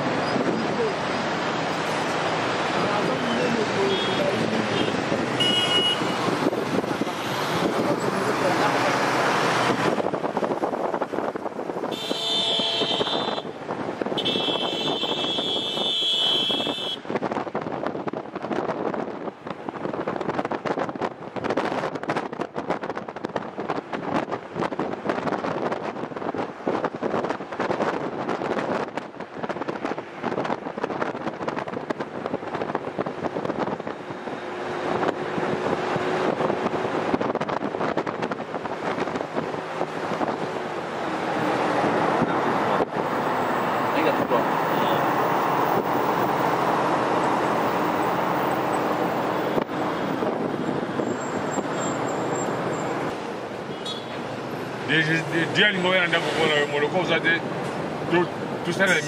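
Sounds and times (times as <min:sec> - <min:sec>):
road traffic noise: 0:00.0 - 0:59.0
high steady horn tone: 0:03.9 - 0:06.2, 0:11.9 - 0:13.5, 0:14.2 - 0:17.0, 0:53.7 - 0:54.2.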